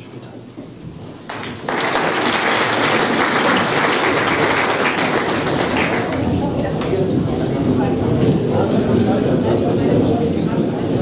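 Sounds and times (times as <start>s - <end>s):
audience applauding: 1.2s - 7.0s.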